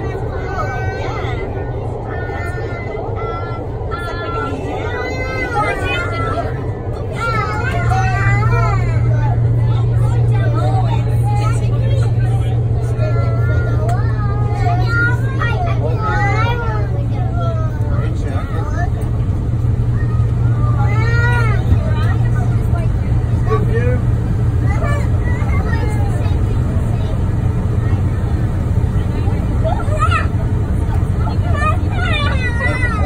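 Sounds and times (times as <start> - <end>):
people chattering: 0.0 - 33.0
train rumbling through tunnel: 0.0 - 33.0.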